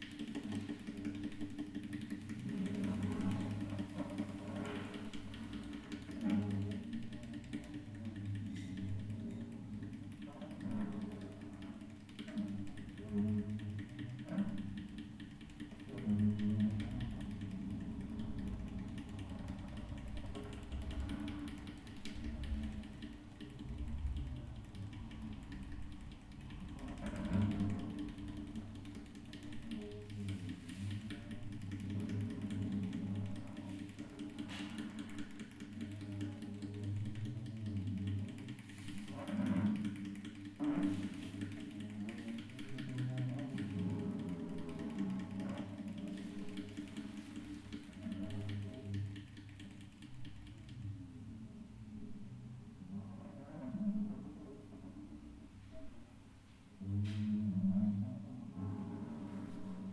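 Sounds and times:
hands rubbing guitar strings: 0:27.2 - 0:50.4.

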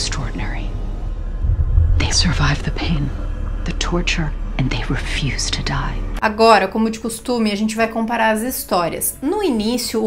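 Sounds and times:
ominous low drone score: 0:00.0 - 0:06.2.

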